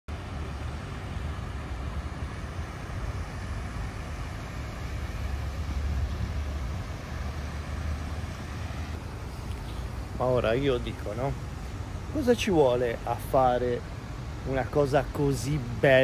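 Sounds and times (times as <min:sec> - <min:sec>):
city background rumble and hiss: 0:00.1 - 0:16.0.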